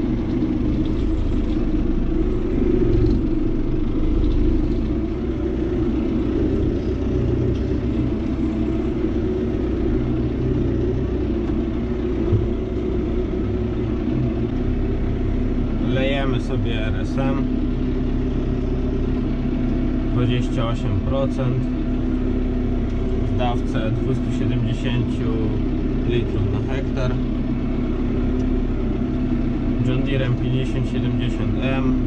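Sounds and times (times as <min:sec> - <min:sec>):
tractor diesel engine running: 0:00.0 - 0:32.0.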